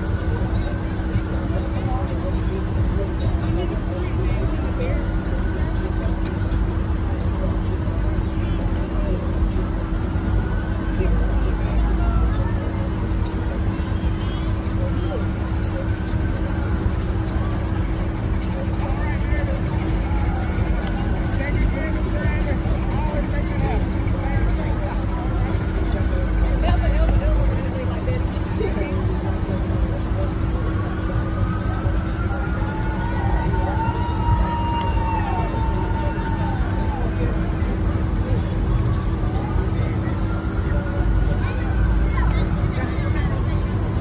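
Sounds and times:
distant voices: 0.0s - 44.0s
low rumble and hum: 0.0s - 44.0s
passing parade vehicles: 0.0s - 44.0s.

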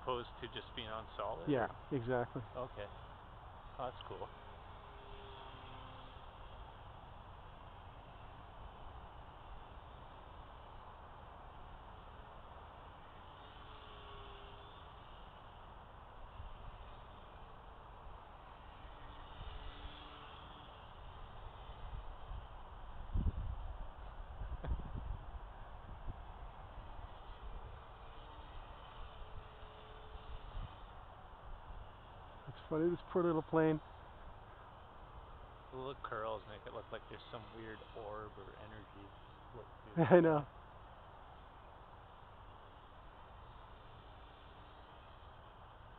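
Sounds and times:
distant rc airplane motor drone: 0.0s - 45.9s
outdoor hiss: 0.0s - 45.9s.

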